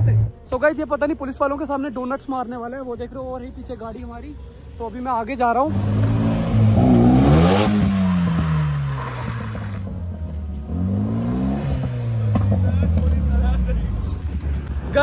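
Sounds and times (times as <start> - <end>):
car engine revving hard: 5.7 - 9.8, 10.7 - 13.0.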